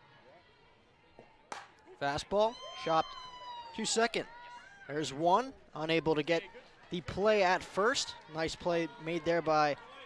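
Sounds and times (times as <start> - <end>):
bat hitting ball crack: 1.5 - 1.8.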